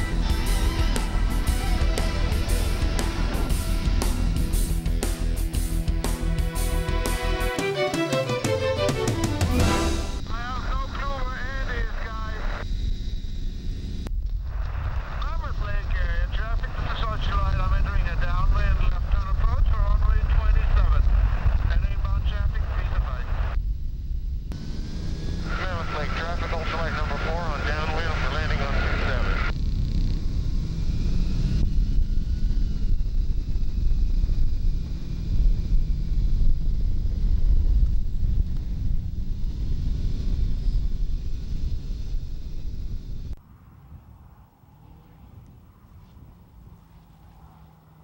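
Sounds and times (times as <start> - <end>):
engine droning: 0.0 - 48.0
wind rumble on microphone: 12.6 - 24.6, 30.0 - 48.0.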